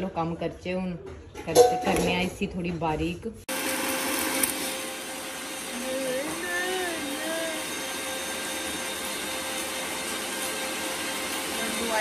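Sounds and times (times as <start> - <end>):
electric mixer grinder running: 3.5 - 12.0.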